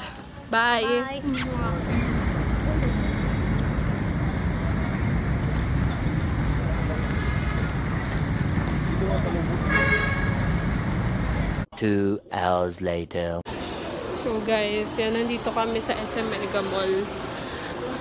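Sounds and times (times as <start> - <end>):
road traffic rumble: 0.2 - 11.7, 13.5 - 18.0
vehicle horn toot: 9.6 - 10.5.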